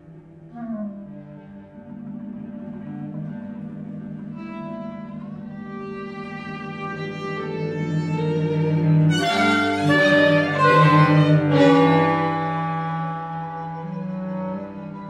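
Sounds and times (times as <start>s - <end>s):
cello sustained line: 0.0s - 15.0s
violin playing: 4.4s - 15.0s
chamber trio playing: 5.1s - 15.0s.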